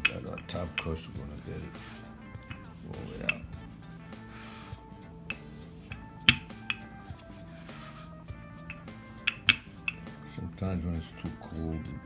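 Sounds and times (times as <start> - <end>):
background music: 0.0 - 12.0
rolling pin knocking on board: 5.3 - 6.9, 8.7 - 10.2.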